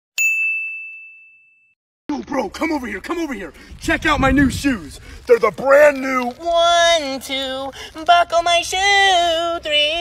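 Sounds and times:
bright bell ding: 0.2s - 1.8s.

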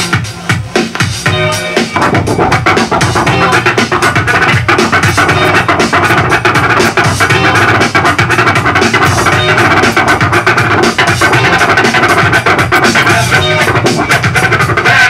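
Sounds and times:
loud playing beat: 0.0s - 15.0s
vinyl record scratching: 0.0s - 15.0s.

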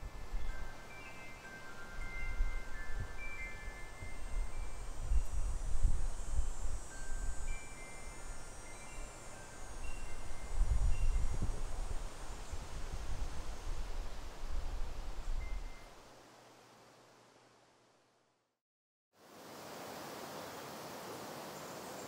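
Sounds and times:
tubular metal wind chime ringing: 0.3s - 12.6s.

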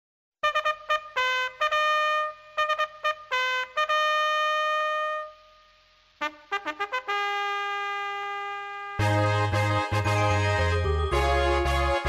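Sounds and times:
brass fanfare held note: 0.4s - 5.4s, 6.2s - 12.0s.

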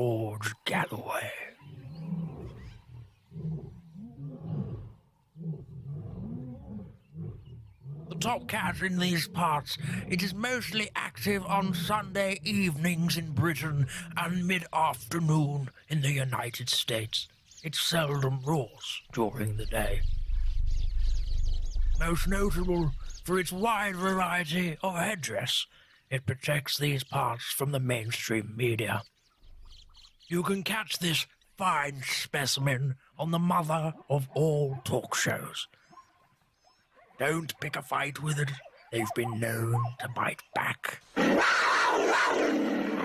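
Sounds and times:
big cat growling: 1.5s - 12.7s, 40.8s - 43.0s
steady low rumble: 19.2s - 24.2s
short bird chirps: 19.4s - 23.3s.

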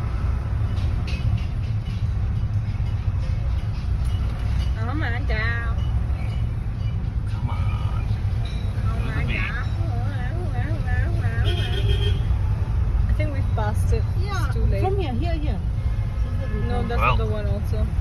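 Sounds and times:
low traffic rumble: 0.0s - 18.0s
bus musical horn: 11.1s - 12.4s, 15.8s - 17.3s.

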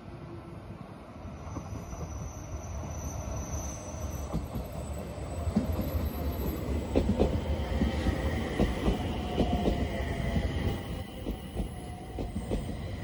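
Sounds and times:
train wheels rumbling on rails: 3.4s - 13.0s
wheels clacking over rail joints: 5.4s - 13.0s.

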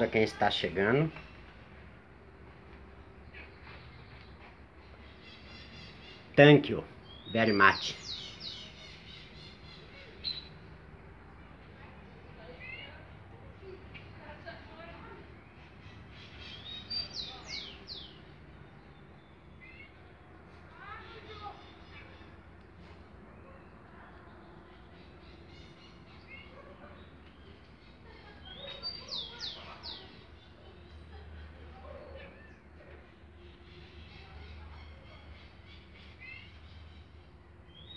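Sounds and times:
bird chirping: 2.9s - 10.7s, 15.3s - 20.0s, 23.3s - 37.9s
bird calling: 27.3s - 32.6s.

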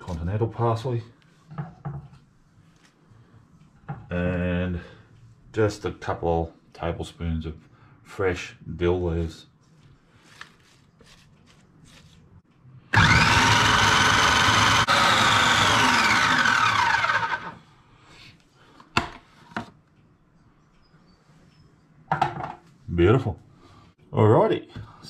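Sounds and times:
food processor motor whining: 12.9s - 17.6s.

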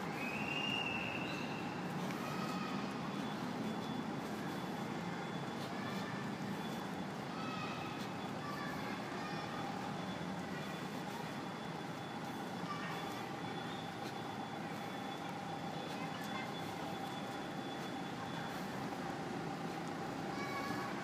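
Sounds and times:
faint steady tone: 0.0s - 21.0s
vehicle engine humming: 0.0s - 21.0s.

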